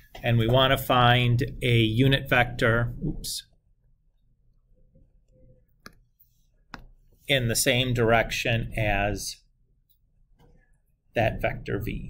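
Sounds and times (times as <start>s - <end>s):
stylus tapping tablet screen: 4.5s - 7.2s.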